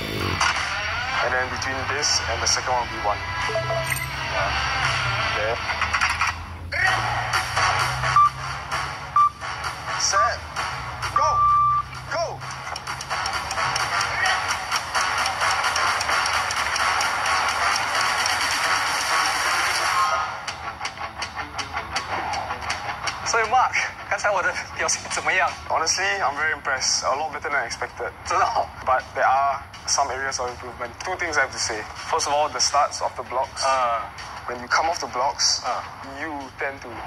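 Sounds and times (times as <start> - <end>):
background music: 0.0 - 37.0
electronic beeps: 8.1 - 8.4, 9.1 - 9.4, 11.2 - 12.0.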